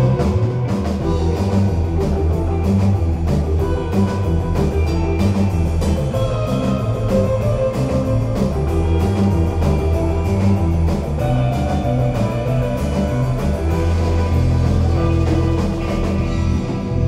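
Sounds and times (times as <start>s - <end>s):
drum kit beat: 0.0s - 17.0s
electric bass line: 0.0s - 17.0s
electric guitars: 0.0s - 17.0s.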